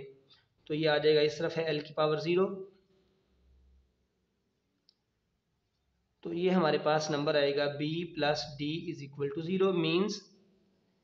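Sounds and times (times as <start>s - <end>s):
faint click: 4.8s - 5.1s.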